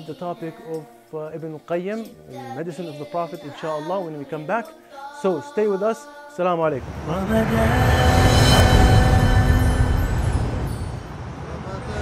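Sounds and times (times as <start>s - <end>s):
tv show theme music: 0.0s - 11.4s
deep low rumble: 6.8s - 11.6s.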